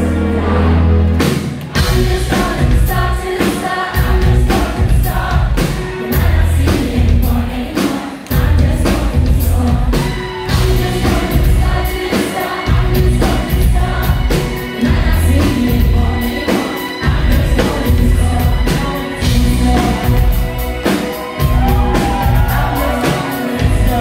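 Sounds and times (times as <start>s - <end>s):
drums: 0.0s - 24.0s
female lead vocal: 1.8s - 20.7s, 21.4s - 24.0s
electric bass guitar: 4.0s - 5.6s, 6.2s - 7.4s, 17.1s - 20.8s, 21.4s - 23.0s, 23.6s - 24.0s.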